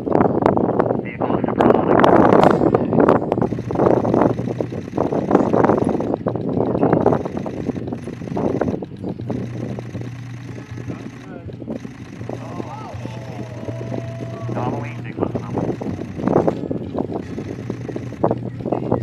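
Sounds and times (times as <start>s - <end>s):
steady low hum: 0.0s - 19.0s
indistinct voices: 10.4s - 19.0s.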